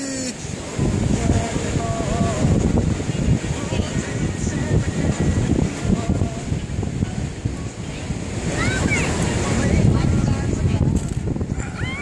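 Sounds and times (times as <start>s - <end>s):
ocean surf: 0.0s - 12.0s
wind buffeting microphone: 0.0s - 12.0s.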